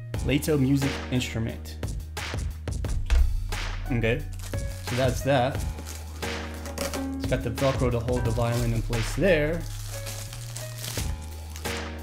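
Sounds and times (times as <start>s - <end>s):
background music with low bass: 0.0s - 12.0s.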